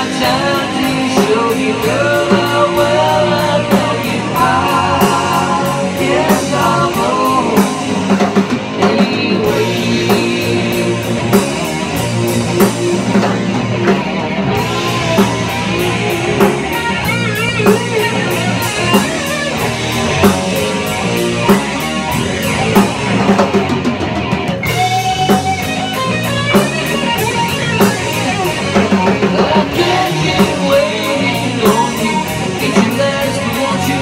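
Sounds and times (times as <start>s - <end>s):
drum kit steady beat: 0.0s - 34.0s
electric bass: 0.0s - 34.0s
electric guitar lead lines: 0.0s - 34.0s.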